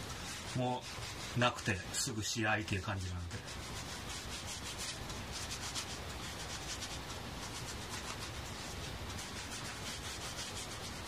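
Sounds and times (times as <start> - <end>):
cloth rubbing leather glove: 0.0 - 2.1, 2.8 - 11.0.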